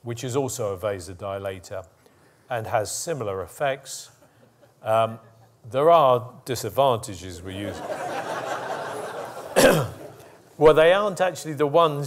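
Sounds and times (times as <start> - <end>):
audience laughter: 7.7 - 10.3
man coughing: 9.6 - 10.2.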